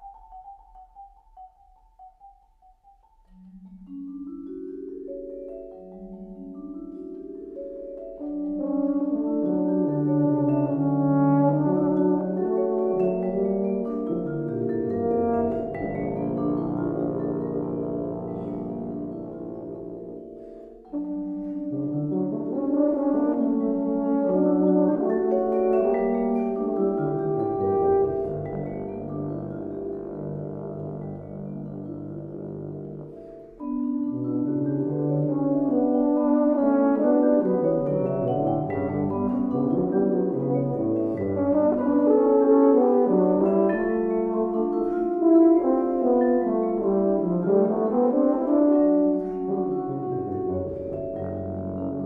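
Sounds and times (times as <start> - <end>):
marimba: 0.0 - 52.0
tuba low line: 8.2 - 52.0.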